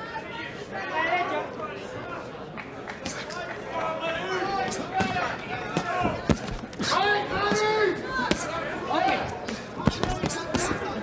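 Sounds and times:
voices: 0:00.0 - 0:11.0
boxing gloves thudding: 0:04.7 - 0:08.6, 0:09.4 - 0:10.8.

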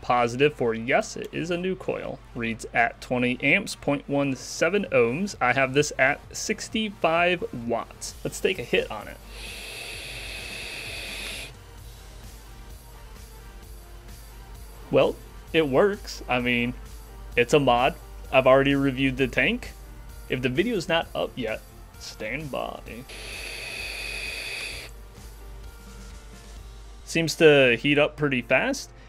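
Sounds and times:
vape draw hissing: 0:09.2 - 0:11.6, 0:23.0 - 0:24.9.

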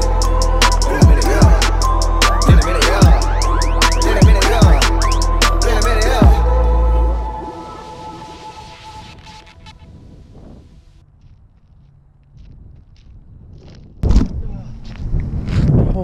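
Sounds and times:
hip hop music: 0:00.0 - 0:09.9
wind buffeting microphone: 0:09.6 - 0:16.0.

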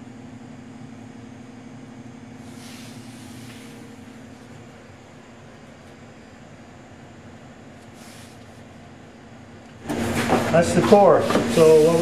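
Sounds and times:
workshop background hum: 0:00.0 - 0:12.0.

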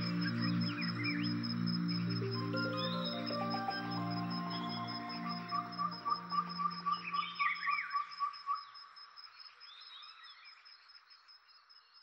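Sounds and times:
background music: 0:00.0 - 0:07.9
birds chirping: 0:00.0 - 0:08.1.

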